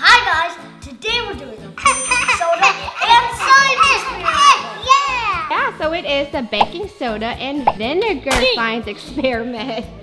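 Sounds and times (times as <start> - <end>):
children's voices: 2.4 - 5.5.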